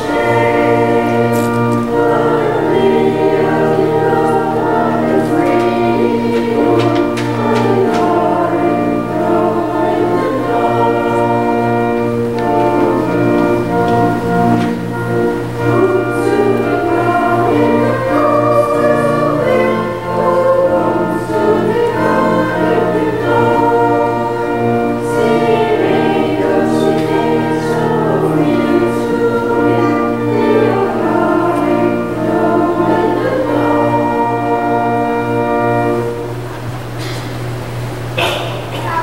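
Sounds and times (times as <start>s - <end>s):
choir and congregation singing a hymn: 0.0s - 38.9s
organ chords: 0.0s - 39.0s.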